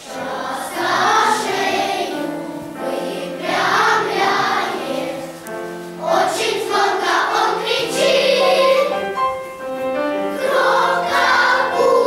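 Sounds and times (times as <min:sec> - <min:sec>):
children's choir singing: 0:00.0 - 0:12.0
piano accompaniment: 0:00.0 - 0:12.0.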